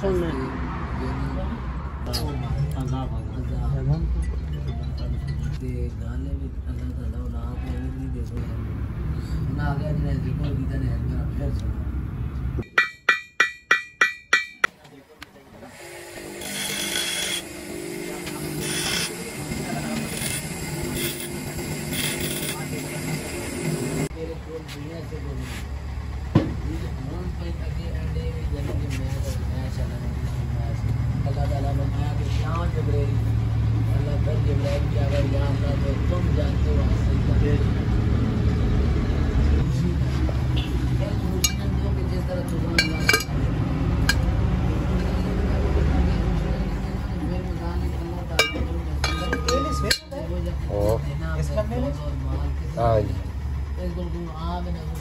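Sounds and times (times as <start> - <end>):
hammer striking metal: 12.6 - 14.8, 42.8 - 43.3, 48.4 - 50.2.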